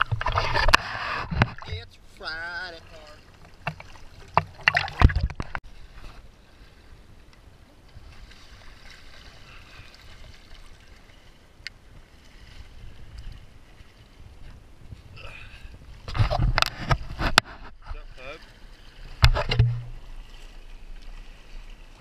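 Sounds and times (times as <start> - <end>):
muffled underwater wash: 0.0 - 22.0
river water splashing: 0.0 - 22.0.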